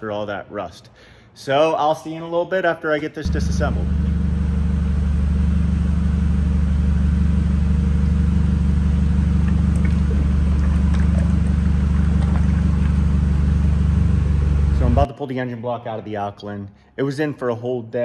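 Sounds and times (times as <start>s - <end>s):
forklift engine idling: 3.3s - 15.1s.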